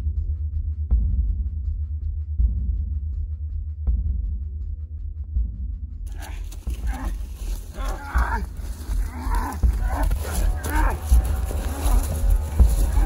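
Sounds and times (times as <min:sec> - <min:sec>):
deep rumble: 0:00.0 - 0:13.0
person growling like a monster: 0:06.1 - 0:13.0.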